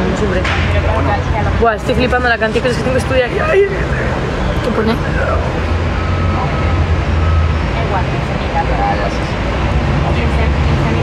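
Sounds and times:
city noise: 0.0 - 11.0
faint voices: 0.0 - 11.0
low rumble of vehicles: 0.0 - 11.0.

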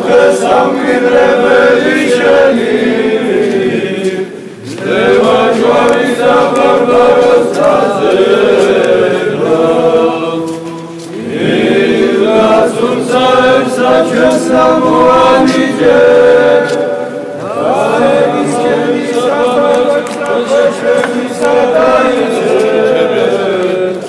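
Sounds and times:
choir chanting: 0.0 - 24.0.

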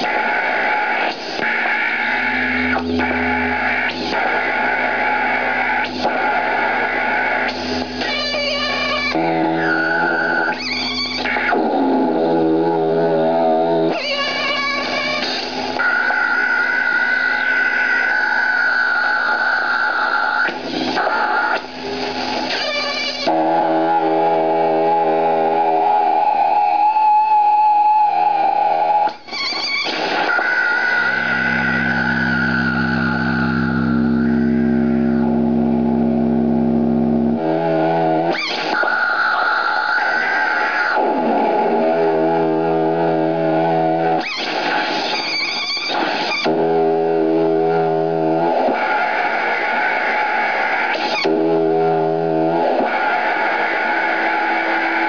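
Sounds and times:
electronic feedback drones and tones: 0.0 - 55.0.

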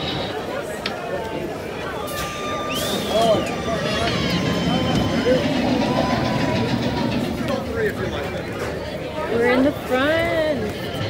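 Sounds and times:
people chatting: 0.0 - 11.0
roller coaster mechanical noise: 0.0 - 11.0.

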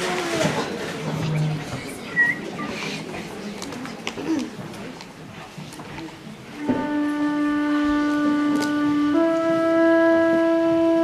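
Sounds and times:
flute holding long note: 6.6 - 11.0.

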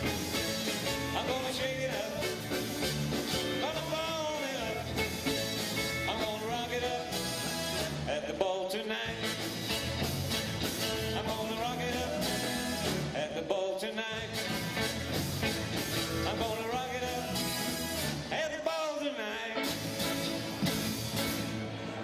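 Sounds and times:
acoustic guitar: 0.0 - 22.0
drums: 0.0 - 22.0
electric guitars: 0.0 - 22.0.

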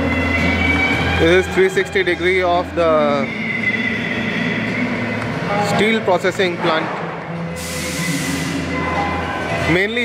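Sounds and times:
machinery hum: 0.0 - 9.7.

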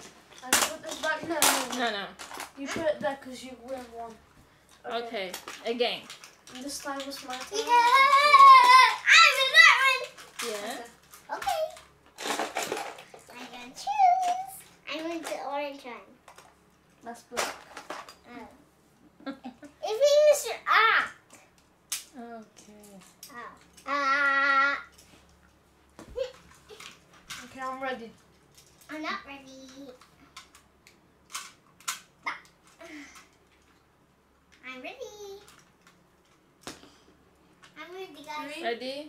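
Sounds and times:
children talking and calling out: 7.2 - 10.2.

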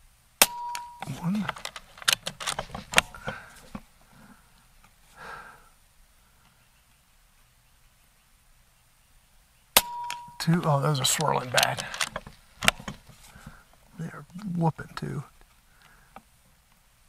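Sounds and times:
air rifle metallic clicks: 0.4 - 3.5, 9.8 - 13.0.

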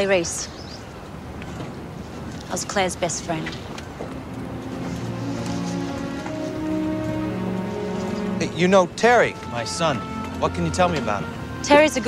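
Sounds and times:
music of held notes: 4.0 - 12.0.

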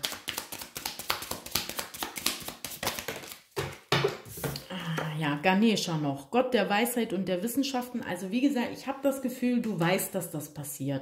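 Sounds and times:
cards being shuffled: 0.0 - 4.6.

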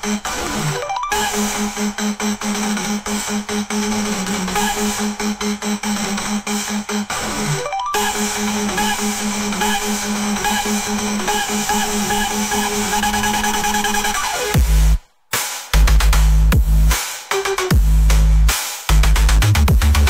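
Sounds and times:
electronic music with synth bass: 0.0 - 20.0.

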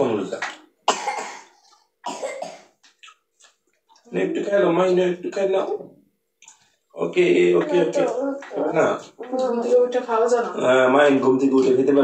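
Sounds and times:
person coughing: 0.9 - 2.8.

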